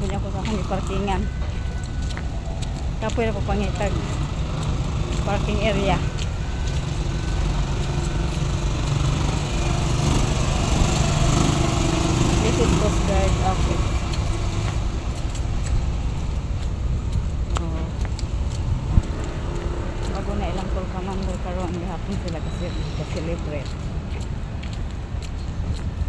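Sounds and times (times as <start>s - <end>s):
woman talking: 0.0s - 1.3s, 3.0s - 4.2s, 5.1s - 6.2s, 12.3s - 14.0s, 17.5s - 18.0s, 20.1s - 23.8s
road traffic rumble: 0.0s - 26.0s.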